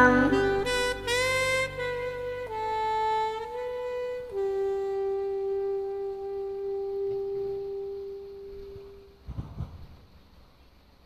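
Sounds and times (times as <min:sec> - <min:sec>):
long held saxophone note: 0:00.0 - 0:09.2.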